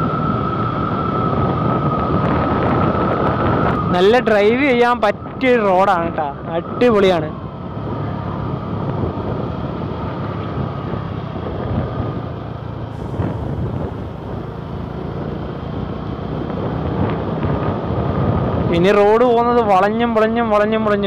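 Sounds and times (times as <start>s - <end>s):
tyre and wind noise: 0.0s - 19.2s
motorcycle engine running: 7.3s - 18.7s.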